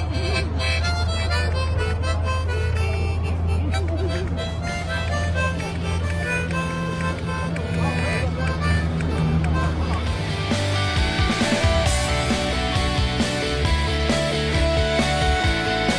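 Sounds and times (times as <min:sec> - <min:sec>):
harmonica playing chords: 0:00.0 - 0:15.9.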